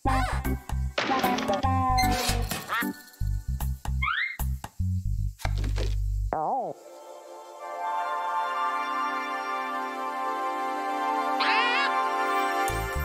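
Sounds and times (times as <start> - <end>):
cartoon music with low bass notes: 0.0 - 6.8.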